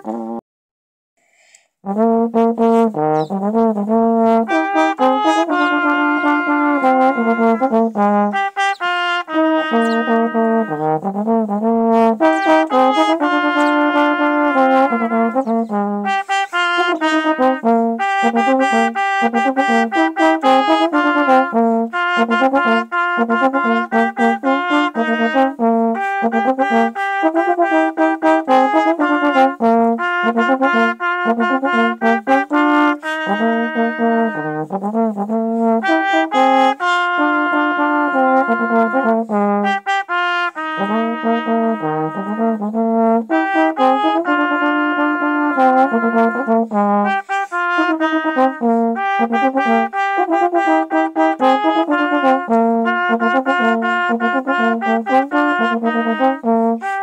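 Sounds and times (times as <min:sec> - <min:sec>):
trombone playing: 0:00.0 - 0:00.4, 0:01.2 - 0:57.0.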